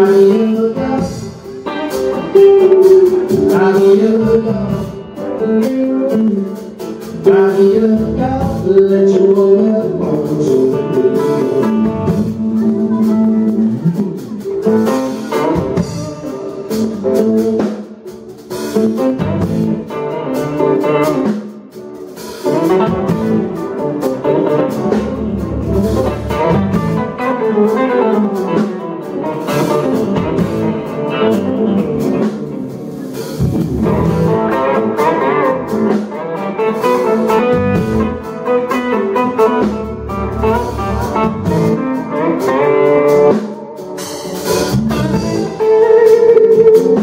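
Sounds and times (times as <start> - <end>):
blues band playing: 0.0 - 47.0.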